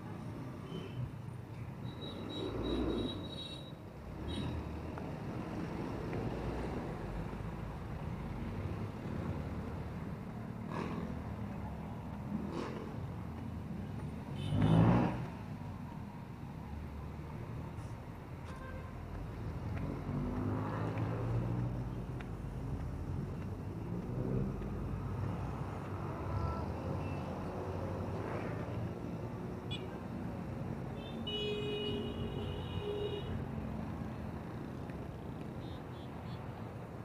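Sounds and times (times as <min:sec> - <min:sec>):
road traffic rumble: 0:00.0 - 0:37.0.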